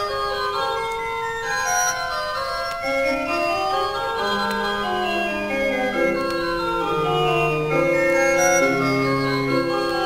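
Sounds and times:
pipe organ music: 0:00.0 - 0:10.0.

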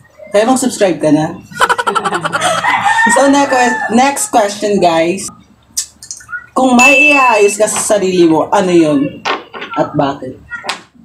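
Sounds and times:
person laughing: 0:01.5 - 0:02.9.

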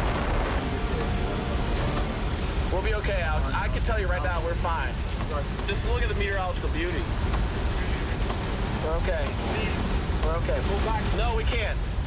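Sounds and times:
tornado wind roaring: 0:00.0 - 0:12.0.

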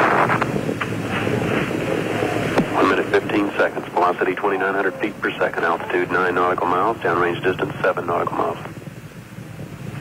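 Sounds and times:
broadcast hiss and rumble: 0:00.0 - 0:10.0
commentator speaking: 0:02.6 - 0:08.7.

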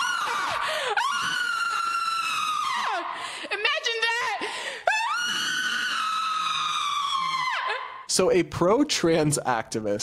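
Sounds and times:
person screaming high-pitched: 0:04.9 - 0:08.0.

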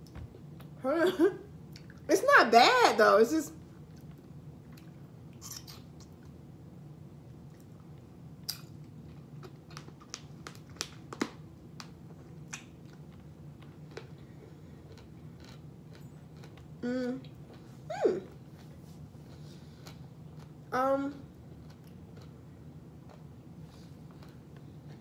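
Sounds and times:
person chewing: 0:12.5 - 0:20.6, 0:21.5 - 0:22.4, 0:23.0 - 0:25.0.

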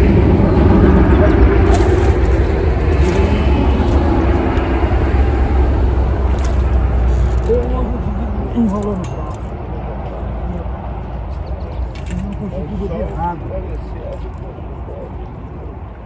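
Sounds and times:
vehicle engine droning: 0:00.0 - 0:16.0.

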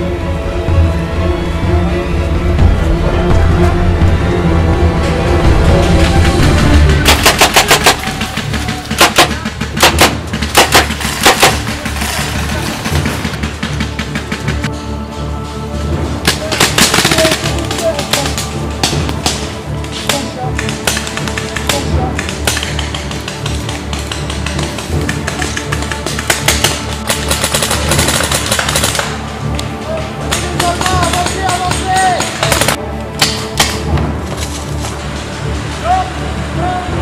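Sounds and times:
background music: 0:00.0 - 0:37.0
paintball markers firing: 0:07.0 - 0:14.7, 0:16.3 - 0:18.6, 0:20.6 - 0:29.2, 0:30.3 - 0:33.8.

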